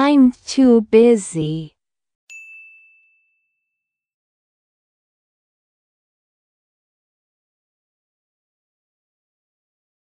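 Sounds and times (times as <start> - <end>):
bell-like ding chime: 2.3 - 4.1.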